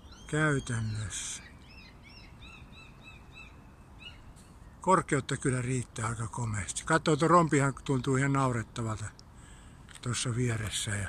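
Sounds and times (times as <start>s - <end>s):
small bird chirping: 0.0s - 4.8s
low outdoor background noise: 0.0s - 11.0s.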